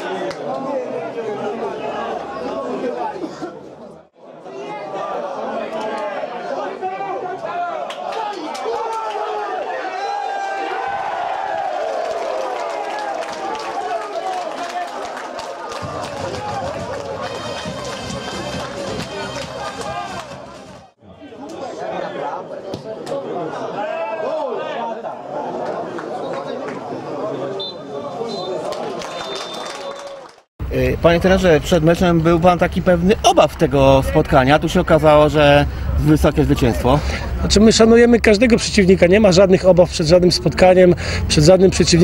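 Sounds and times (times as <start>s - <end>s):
people calling out and talking: 30.6s - 42.0s.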